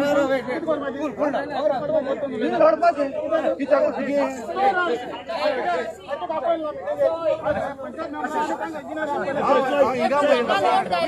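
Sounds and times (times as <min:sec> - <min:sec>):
men arguing: 0:00.0 - 0:11.0.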